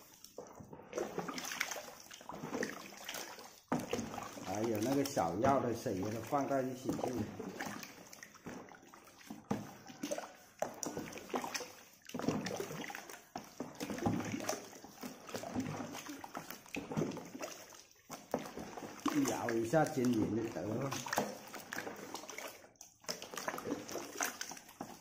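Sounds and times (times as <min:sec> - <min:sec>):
wet mash sloshing in bucket: 0:00.0 - 0:25.0.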